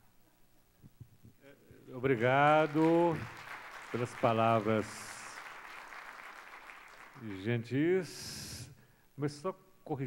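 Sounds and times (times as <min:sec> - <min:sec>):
faint thin applause: 0:02.2 - 0:07.5.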